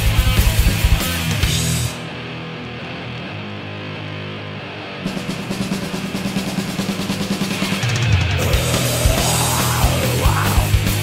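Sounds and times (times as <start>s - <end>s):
rapid snare drum roll: 5.1s - 9.0s.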